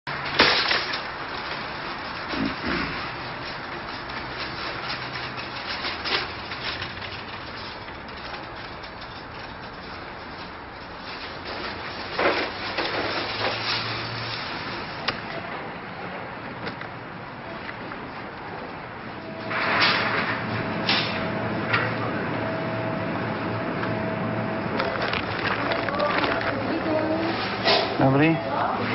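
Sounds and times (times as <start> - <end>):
wire shopping cart clattering: 0.1 - 15.4, 24.8 - 28.9.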